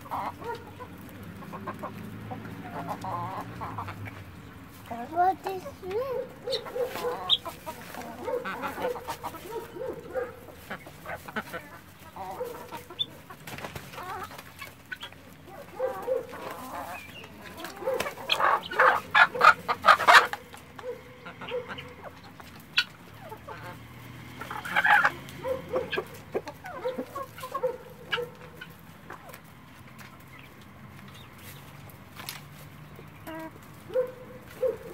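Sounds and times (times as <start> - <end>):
guineafowl rapid calls: 0.0 - 4.3, 6.2 - 29.4
chickens clucking: 0.0 - 34.9.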